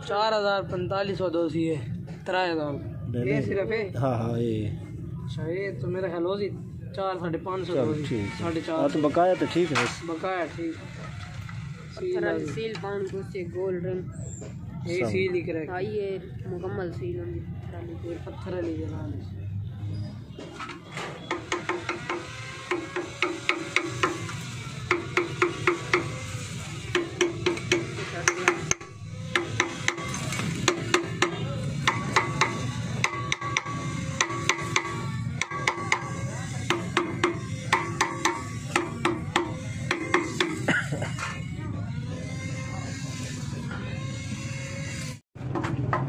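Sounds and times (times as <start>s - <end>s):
metal-on-metal tapping: 20.6s - 26.3s, 26.9s - 40.7s.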